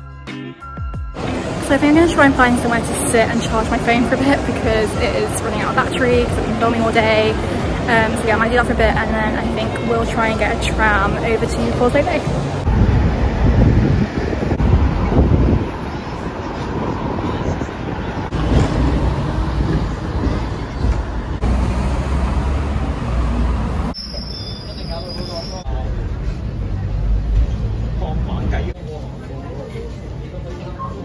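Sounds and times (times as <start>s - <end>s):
street traffic: 0.0s - 31.0s
tram rumbling and rattling: 1.2s - 31.0s.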